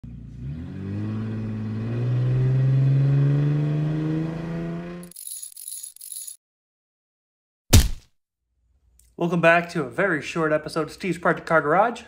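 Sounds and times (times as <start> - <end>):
car engine revving up: 0.0 - 5.1.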